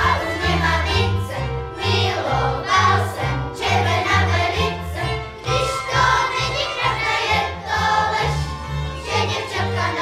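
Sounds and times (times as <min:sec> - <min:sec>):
string band playing: 0:00.0 - 0:10.0.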